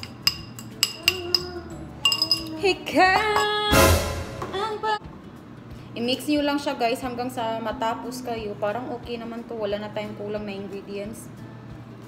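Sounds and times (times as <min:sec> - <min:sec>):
metal spoon clinking on bowl: 0:00.0 - 0:03.7.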